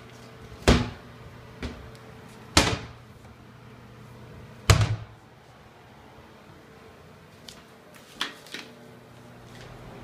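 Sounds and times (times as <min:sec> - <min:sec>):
cabinet door banging: 0:00.6 - 0:01.0, 0:02.6 - 0:03.0, 0:04.7 - 0:05.1.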